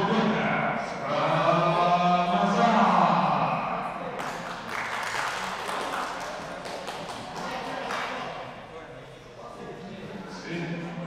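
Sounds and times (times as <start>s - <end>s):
man announcing over speakers: 0.0s - 4.4s, 9.5s - 11.0s
echoing hall noise: 0.0s - 11.0s.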